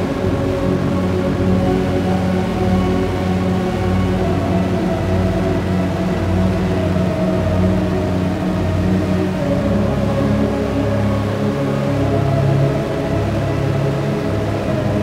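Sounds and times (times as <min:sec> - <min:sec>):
dark ambient synth music: 0:00.0 - 0:15.0.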